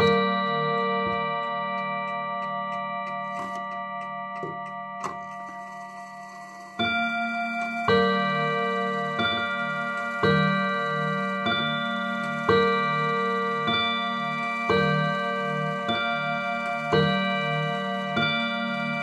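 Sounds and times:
clock chime two-tone strikes: 0.0 - 19.0
clock ticking: 0.0 - 19.0.

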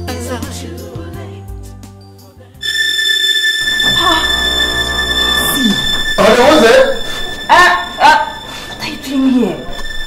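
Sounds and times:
music: 0.0 - 10.0
steady high-pitched whine: 2.6 - 10.0.

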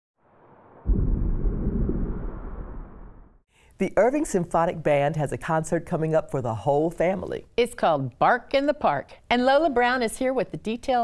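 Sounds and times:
deep rumbling sound effect: 0.2 - 3.4.

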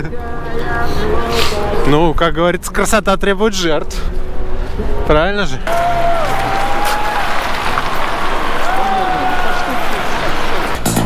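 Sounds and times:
traffic on wet road: 6.8 - 11.0.

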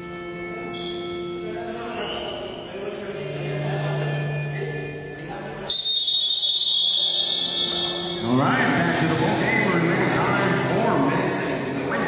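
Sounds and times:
background music: 0.0 - 12.0
voices in a hall: 0.0 - 12.0
referee's whistle blast: 5.7 - 8.2.

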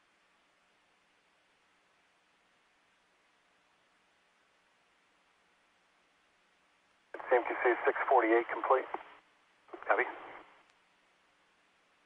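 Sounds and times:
faint hiss: 0.0 - 12.0
person speaking: 7.2 - 9.0, 9.7 - 10.4
radio voice loop: 7.2 - 9.1, 9.7 - 10.4.

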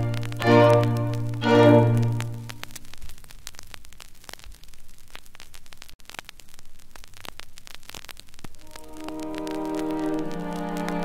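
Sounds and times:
record clicks and crackles: 0.0 - 11.0
static hiss: 0.0 - 11.0.

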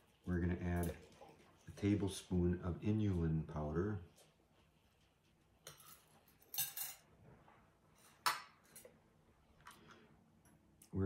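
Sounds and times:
metal utensil scraping: 5.6 - 7.0.

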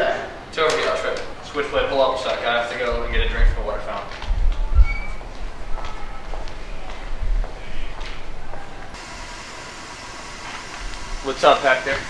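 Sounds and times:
steady hiss: 9.0 - 12.0.

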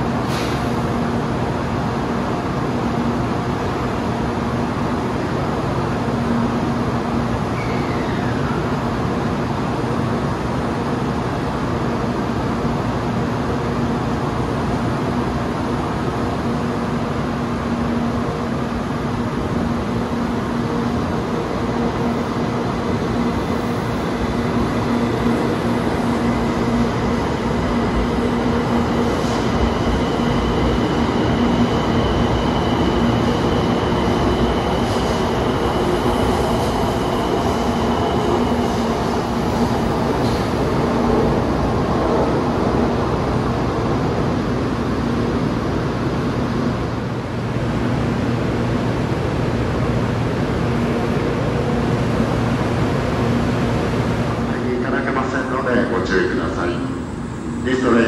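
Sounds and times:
train rumbling past: 0.0 - 58.0.

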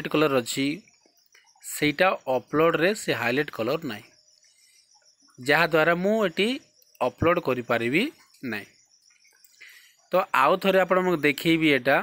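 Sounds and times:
faint high-pitched hiss: 0.0 - 12.0.

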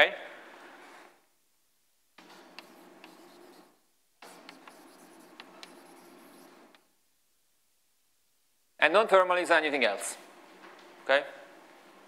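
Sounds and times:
chalk scratching on blackboard: 2.2 - 6.8
chalk taps: 2.2 - 6.9.

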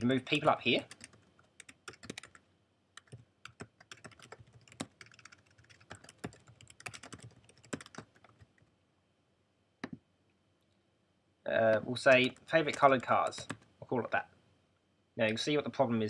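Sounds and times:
computer keyboard typing: 0.0 - 2.4, 3.0 - 8.6, 11.7 - 13.7.

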